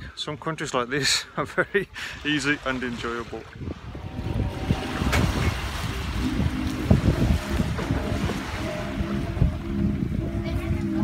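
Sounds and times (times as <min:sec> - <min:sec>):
small waves on a beach: 0:00.0 - 0:11.0
wind buffeting microphone: 0:01.9 - 0:11.0.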